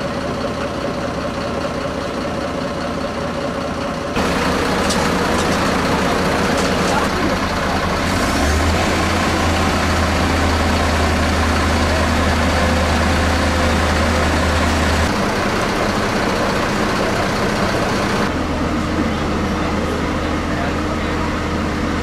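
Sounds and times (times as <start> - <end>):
fire truck diesel engine running: 0.0 - 22.0.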